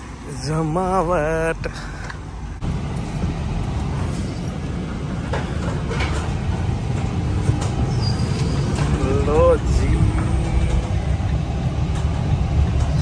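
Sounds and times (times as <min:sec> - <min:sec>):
van engine and road rumble: 0:00.0 - 0:13.0.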